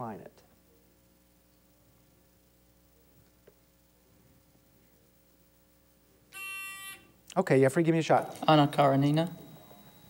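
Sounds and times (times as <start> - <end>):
quiz buzzer tone: 6.3 - 7.2, 8.1 - 10.0.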